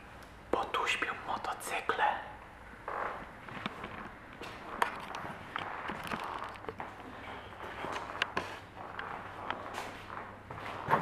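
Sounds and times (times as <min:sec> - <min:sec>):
footsteps on hard floor: 0:02.9 - 0:11.0.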